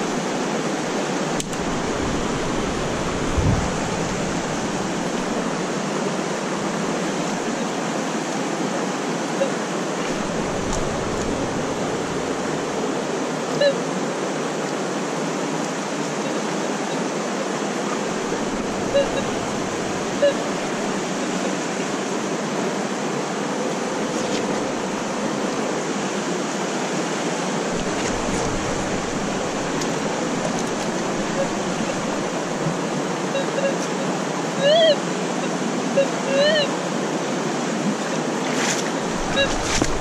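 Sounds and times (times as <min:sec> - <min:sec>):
fast-flowing river rushing: 0:00.0 - 0:40.0.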